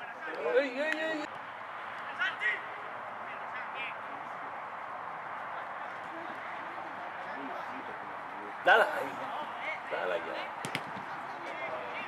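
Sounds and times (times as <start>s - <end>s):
open-air background noise: 0.0s - 12.0s.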